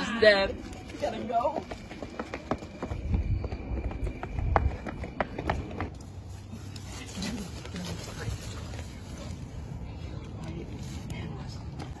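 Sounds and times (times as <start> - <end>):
people running on asphalt: 0.8 - 6.4.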